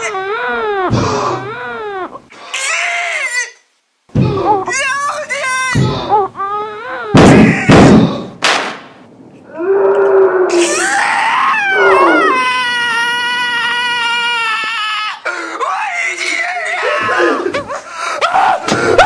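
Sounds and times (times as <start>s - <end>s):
person crying and screaming: 5.8s - 7.8s, 10.3s - 19.0s.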